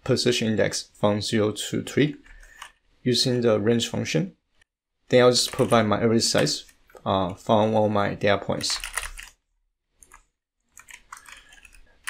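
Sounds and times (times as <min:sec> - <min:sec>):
computer keyboard typing: 0:08.6 - 0:09.4, 0:10.0 - 0:12.0.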